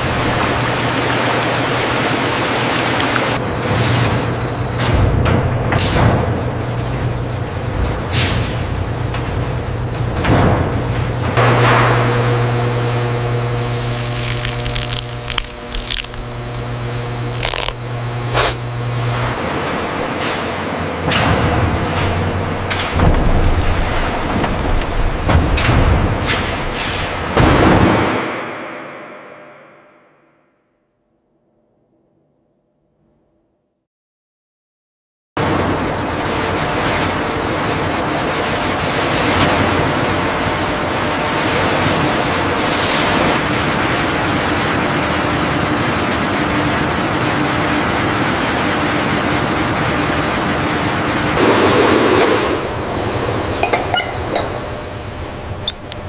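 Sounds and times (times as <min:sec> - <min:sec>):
machinery humming: 0:10.8 - 0:26.2, 0:49.1 - 0:56.0.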